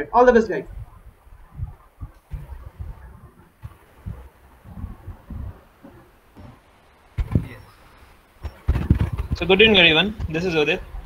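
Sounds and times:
faint low thumps and rumble: 0.0 - 11.0.

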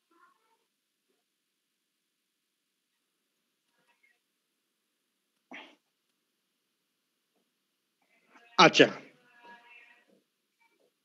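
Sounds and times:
faint vocal cry: 5.5 - 5.8.

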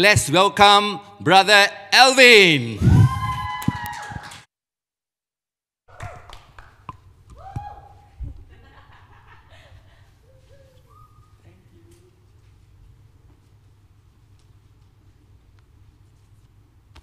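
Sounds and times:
man's amplified voice: 0.0 - 2.8.

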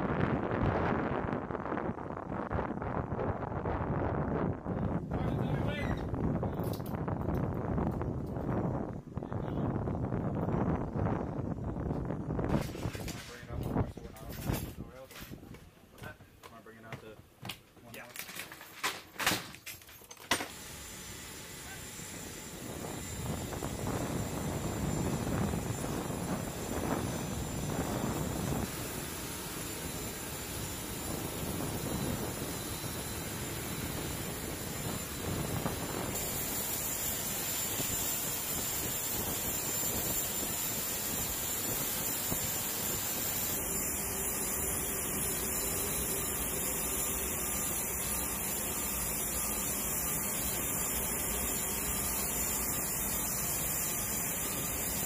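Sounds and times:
aircraft turbine whine: 0.0 - 13.0, 20.4 - 55.0.

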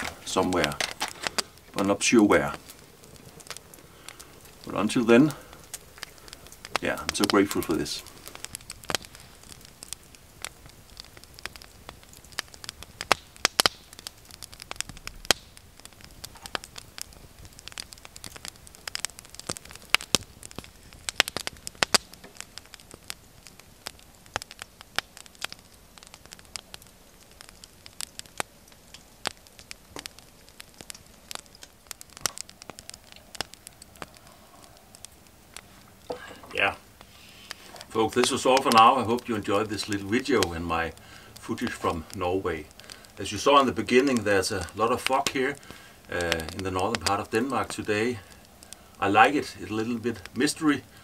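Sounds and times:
wood fire crackling: 0.0 - 51.0.

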